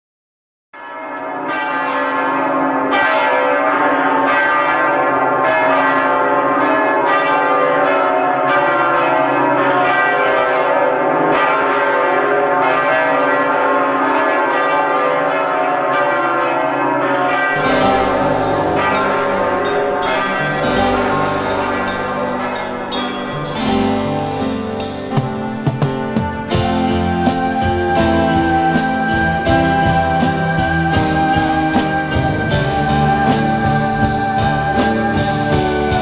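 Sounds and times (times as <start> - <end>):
bells ringing in a peal: 0.8 - 36.0.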